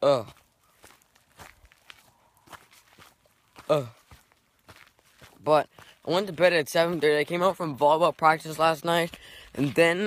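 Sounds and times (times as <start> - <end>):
person grunting: 0.0 - 0.4, 3.7 - 4.0
faint footsteps: 0.2 - 10.0.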